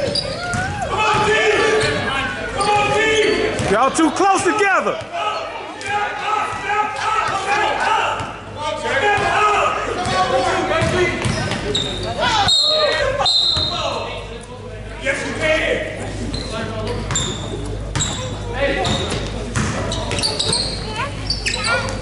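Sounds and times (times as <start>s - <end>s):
spectators' voices and calls: 0.0s - 22.0s
short high-pitched squeaks: 19.9s - 22.0s.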